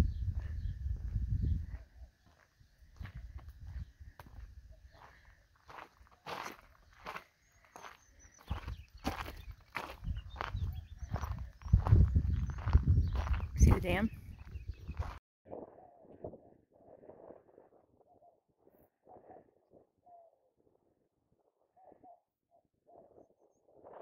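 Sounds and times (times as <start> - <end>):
low microphone rumble: 0.0 - 2.0, 10.0 - 15.2
footsteps on gravel: 1.7 - 15.2.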